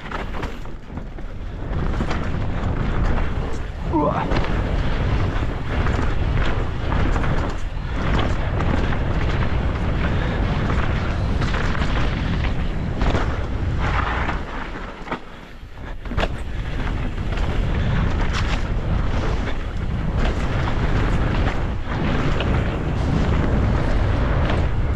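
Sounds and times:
bike rattling over bumps: 0.0 - 24.9
tyre roar on dirt: 0.0 - 24.9
wind rush on microphone: 0.0 - 24.9.

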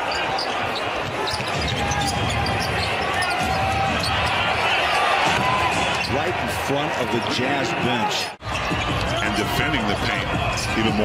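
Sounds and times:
arena crowd noise: 0.0 - 11.0.

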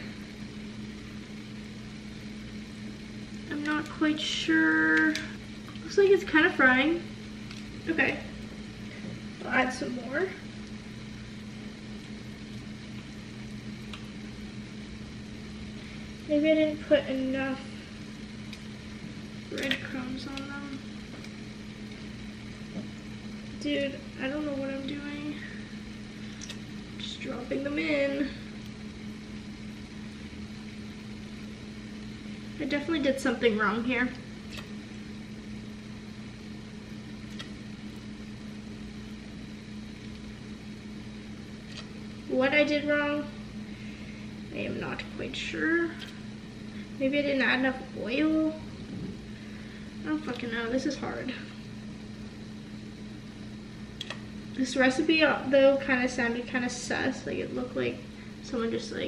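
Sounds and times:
low hum: 0.0 - 59.0.

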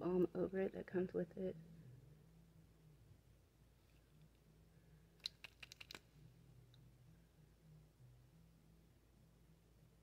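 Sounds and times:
small plastic clicks and taps: 5.2 - 6.0.

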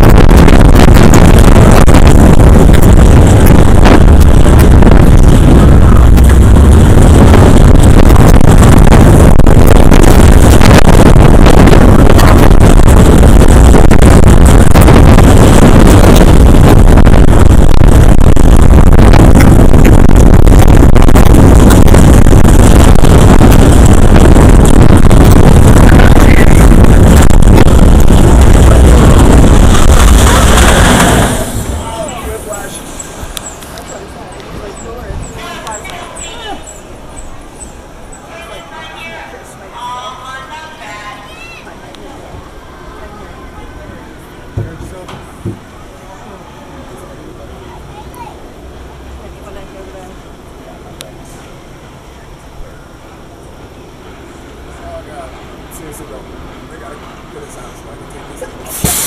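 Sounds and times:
wind rushing on microphone: 0.0 - 38.3
roller coaster train rumbling: 0.0 - 59.0.

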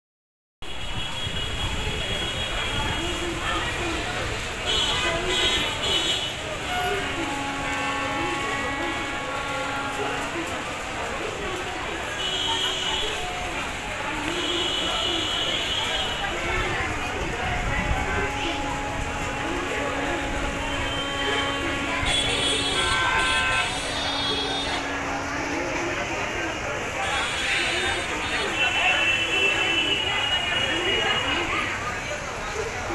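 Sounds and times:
long steady horn: 0.6 - 32.0
street traffic: 0.6 - 32.9.

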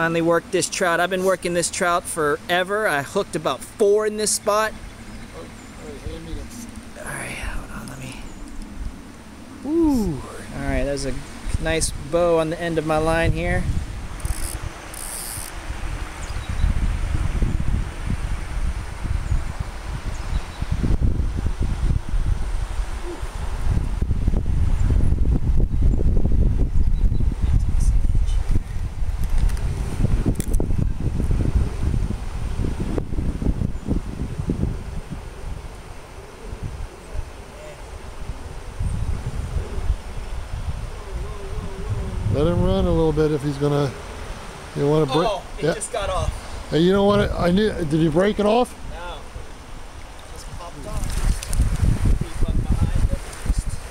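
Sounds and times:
wind buffeting microphone: 3.2 - 53.9.

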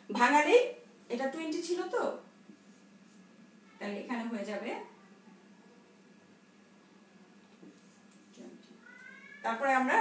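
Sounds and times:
cat meowing: 8.8 - 9.6.

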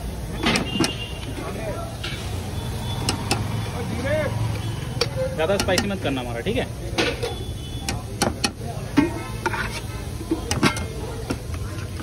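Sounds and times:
road traffic rumble: 0.0 - 12.0
spoon clinking on steel pots: 4.8 - 6.2, 6.9 - 12.0.

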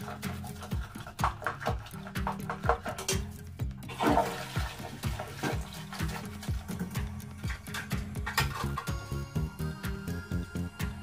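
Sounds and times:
toilet flushing: 0.0 - 8.9
background music with steady beat: 0.0 - 11.0.

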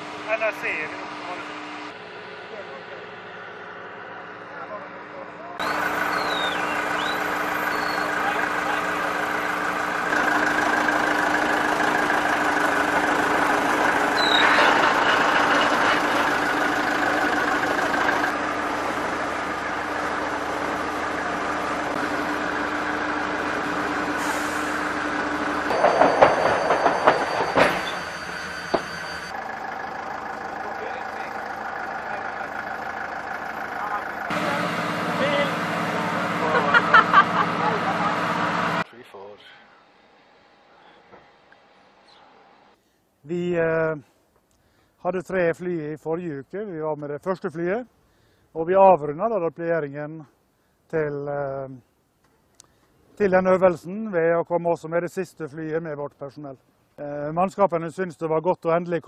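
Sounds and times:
knocks and clatter: 25.6 - 29.3.

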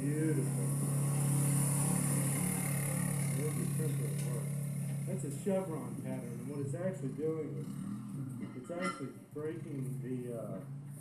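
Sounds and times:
engine droning through speakers: 0.0 - 11.0
faint voices: 5.1 - 10.7.

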